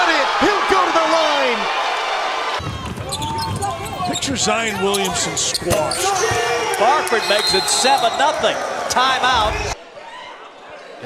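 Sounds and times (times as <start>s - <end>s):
crowd voices: 1.5s - 11.0s.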